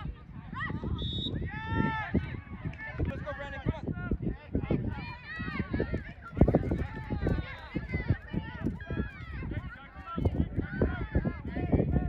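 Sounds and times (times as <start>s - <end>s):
voices shouting across a field: 0.0s - 12.0s.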